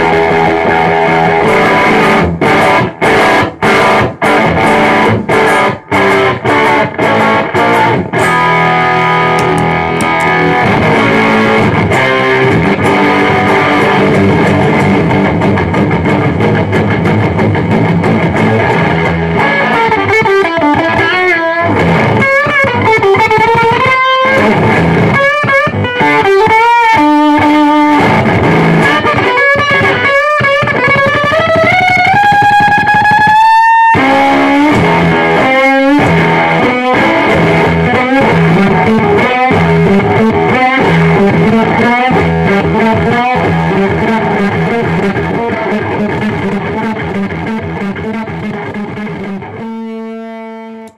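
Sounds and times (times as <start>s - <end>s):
distorted electric guitar: 0.0s - 50.9s.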